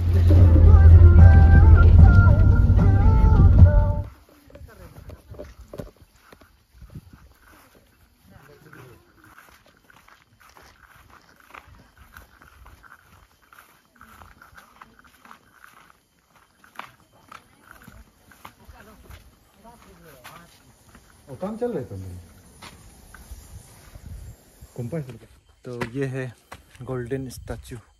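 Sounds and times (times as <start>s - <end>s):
footsteps through long grass: 3.8s - 27.7s
distant calls and voices: 4.1s - 26.9s.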